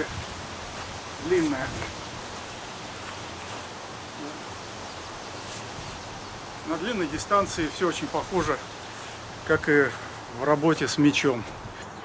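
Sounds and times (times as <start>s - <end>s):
wind and rustling foliage: 0.0s - 12.0s.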